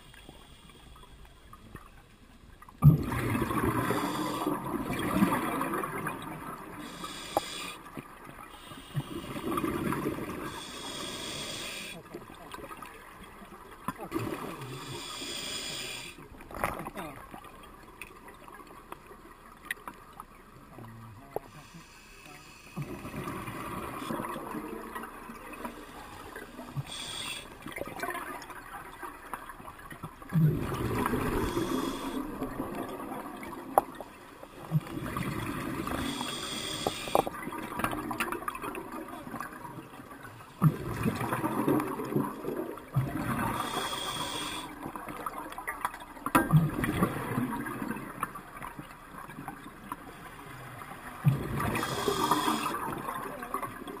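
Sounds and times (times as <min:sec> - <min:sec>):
gurgling exhaled bubbles: 0:02.8 - 0:07.7, 0:08.8 - 0:11.8, 0:22.8 - 0:28.7, 0:30.3 - 0:34.0, 0:34.6 - 0:39.7, 0:40.6 - 0:45.4, 0:46.4 - 0:48.4, 0:50.9 - 0:54.0
regulator hiss on inhalation: 0:06.8 - 0:07.8, 0:10.5 - 0:12.0, 0:14.8 - 0:16.2, 0:21.6 - 0:22.8, 0:26.8 - 0:27.6, 0:31.3 - 0:32.3, 0:35.9 - 0:37.3, 0:43.5 - 0:44.7, 0:51.7 - 0:52.8.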